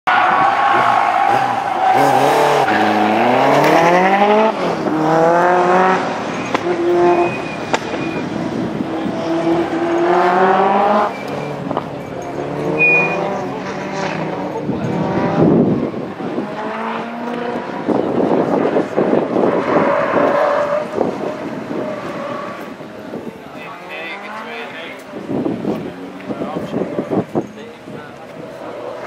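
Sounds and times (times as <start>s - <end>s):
car engine accelerating: 0.1s - 29.0s.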